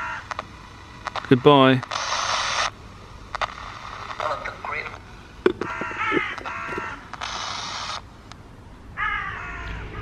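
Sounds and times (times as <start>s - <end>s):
radio squawks: 0.0s - 2.8s, 3.4s - 8.1s
radio hiss: 0.0s - 8.3s.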